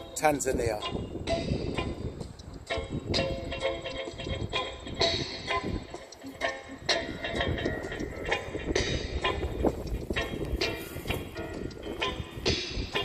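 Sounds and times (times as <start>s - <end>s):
reggae music from small speaker: 0.0s - 13.0s
wind rumble on microphone: 0.0s - 13.0s.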